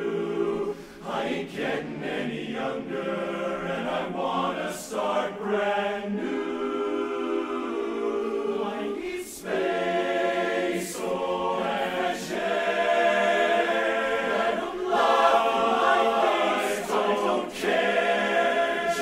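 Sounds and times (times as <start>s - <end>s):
men's chorus singing a cappella: 0.0s - 19.0s.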